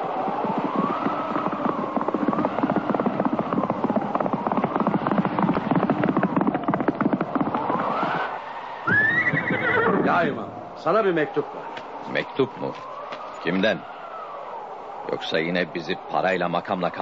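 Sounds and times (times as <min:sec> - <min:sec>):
horse hooves galloping: 0:00.0 - 0:10.4
horse whinnying: 0:08.8 - 0:10.4.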